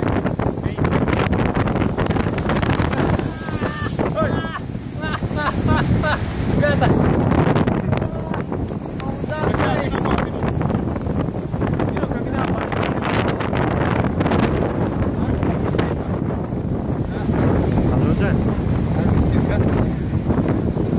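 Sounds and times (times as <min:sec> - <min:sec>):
waves breaking over rocks: 0:00.0 - 0:20.9
wind buffeting microphone: 0:00.0 - 0:20.9.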